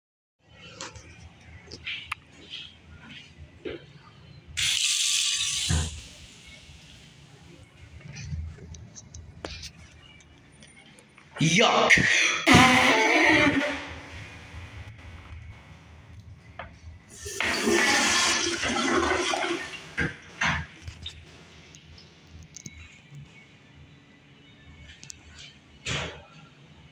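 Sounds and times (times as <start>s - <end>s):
toilet flushing: 17.1s - 20.7s
faucet water running: 17.2s - 20.1s.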